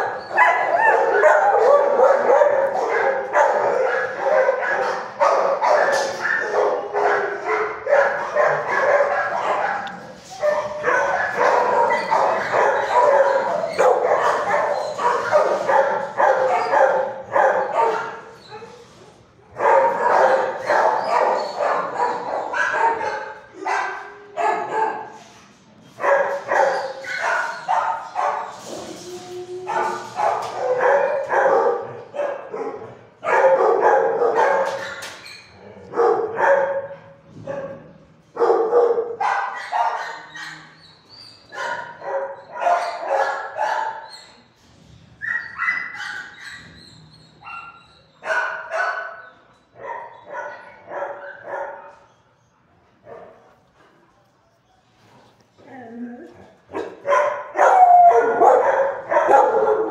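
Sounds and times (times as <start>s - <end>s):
dogs barking: 0.0s - 18.8s, 19.5s - 25.2s, 26.0s - 28.7s, 29.6s - 44.2s, 45.2s - 46.8s, 47.4s - 52.1s, 56.7s - 59.9s.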